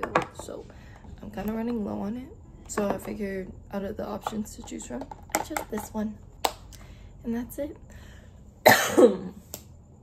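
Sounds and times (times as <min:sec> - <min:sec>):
woman coughing: 0:08.6 - 0:09.4.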